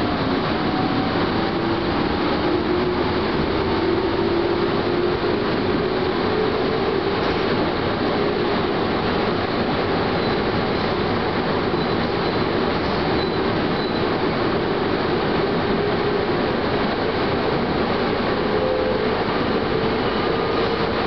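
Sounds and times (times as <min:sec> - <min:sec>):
train wheels rumbling on rail: 0:00.0 - 0:21.0
high wheel squeals: 0:10.1 - 0:10.9, 0:11.6 - 0:14.2.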